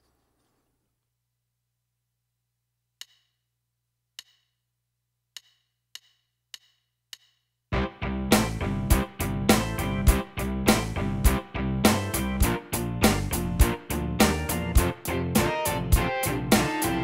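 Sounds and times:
metronome clicks: 3.0 - 3.4, 4.2 - 4.5, 5.4 - 7.4
backing song with drums: 8.3 - 17.0.

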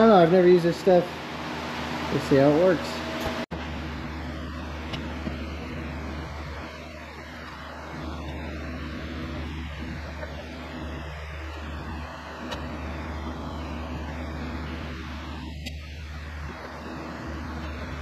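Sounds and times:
low mechanical hum: 0.0 - 18.0.

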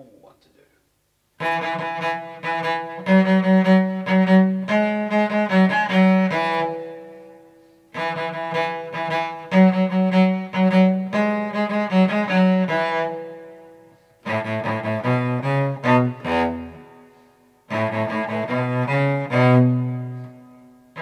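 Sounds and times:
bowed cello: 1.4 - 21.0.

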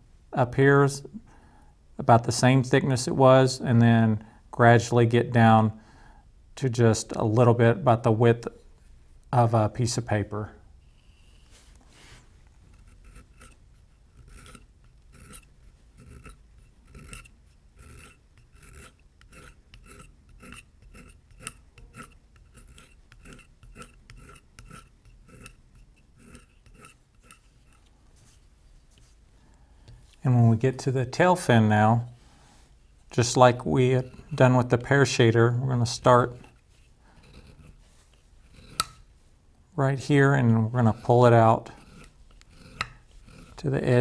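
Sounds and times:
blade scraping leather: 11.0 - 29.2, 33.5 - 34.9, 35.8 - 39.1, 40.0 - 44.0
leather skiver scraping leather: 40.6 - 44.0.

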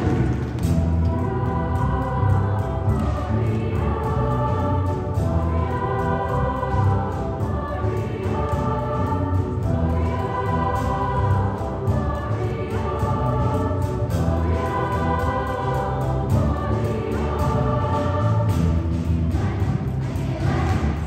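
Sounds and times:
children's choir singing: 0.0 - 21.0
low instrumental accompaniment: 0.0 - 21.0.

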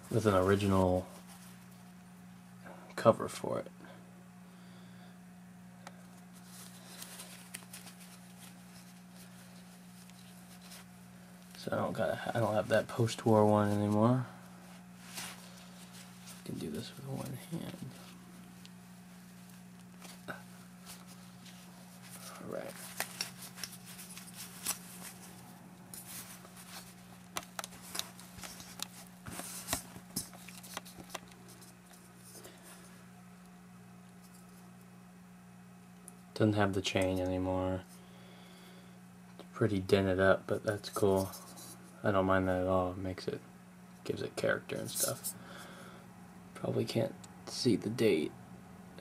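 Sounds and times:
steady low hum: 0.0 - 49.0
cloth rustling: 6.1 - 32.9.

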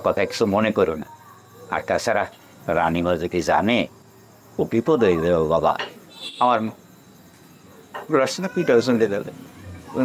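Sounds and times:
crickets chirping: 0.0 - 10.0
man talking: 1.7 - 4.0, 4.6 - 6.8, 8.0 - 9.4.

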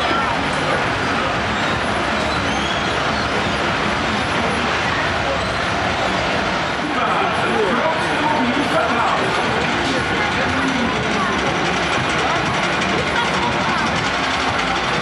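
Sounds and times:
loud mechanical rumble: 0.0 - 15.0
many voices: 0.0 - 15.0.

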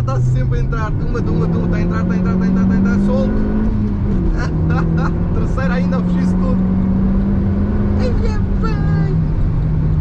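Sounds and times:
car engine pulling hard: 0.0 - 10.0.

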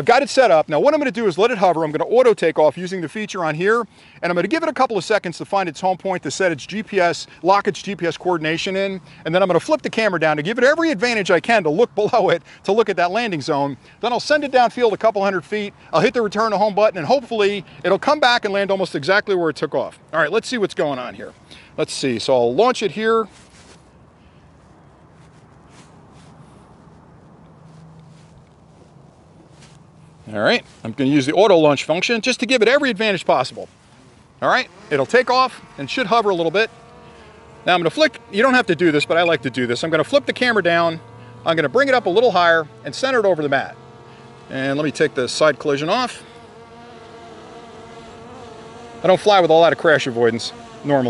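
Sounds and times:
light wind: 0.0 - 51.0
low steady hum: 20.9 - 51.0
drone propellers buzzing: 33.9 - 51.0.

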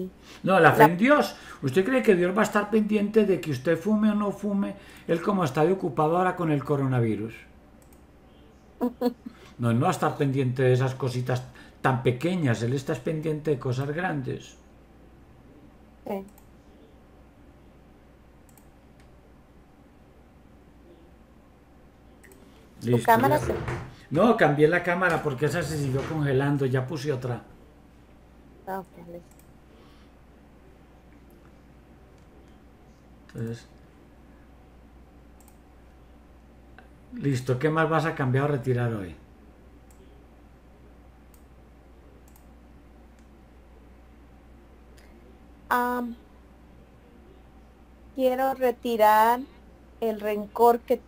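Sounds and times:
low room hum: 0.0 - 51.0
computer mouse clicks: 7.8 - 8.1, 16.2 - 16.6, 18.4 - 19.2, 22.2 - 22.5, 29.2 - 29.6, 35.4 - 35.6, 42.2 - 42.5
faint sharp clicks: 35.4 - 36.0, 42.2 - 42.5.

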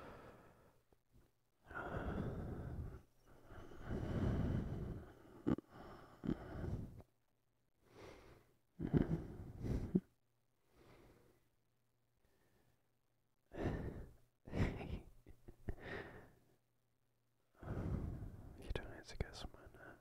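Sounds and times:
man breathing and sighing: 1.6 - 7.1, 7.8 - 11.4, 13.5 - 16.6, 17.6 - 18.6.

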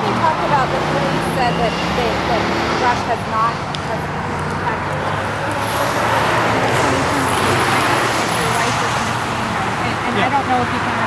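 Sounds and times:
faint voices: 0.0 - 11.0
vehicle passing by: 0.0 - 11.0.

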